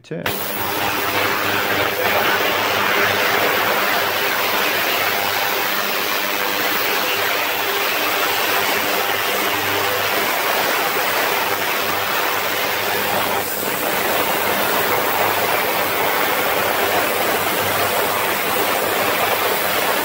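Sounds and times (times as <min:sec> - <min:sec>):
ultrasonic cleaner hissing: 0:00.2 - 0:20.0.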